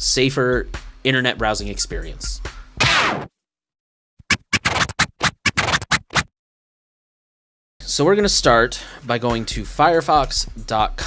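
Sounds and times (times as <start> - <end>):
record scratching: 4.2 - 6.3.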